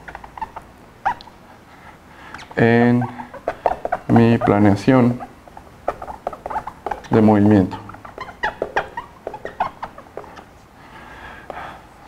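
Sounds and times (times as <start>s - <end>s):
marker squeaking on whiteboard: 0.0s - 1.4s, 2.2s - 10.6s.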